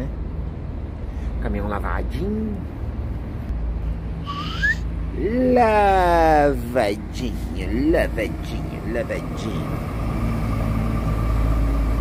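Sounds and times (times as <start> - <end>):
whistle-like tone rising: 4.3 - 4.8
steady low rumble: 4.8 - 12.0.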